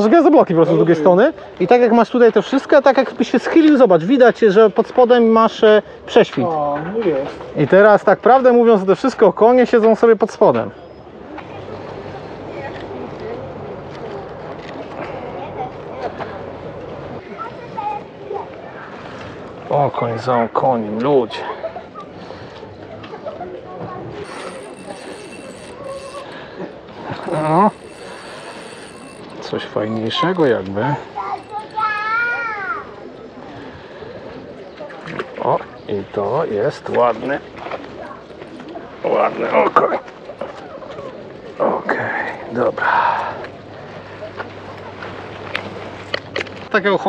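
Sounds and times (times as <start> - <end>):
outdoor background murmur: 0.0 - 47.0.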